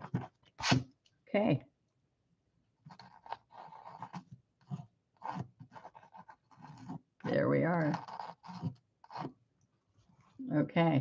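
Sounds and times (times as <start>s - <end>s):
pencil scratching on canvas: 0.0s - 0.9s, 2.9s - 9.4s.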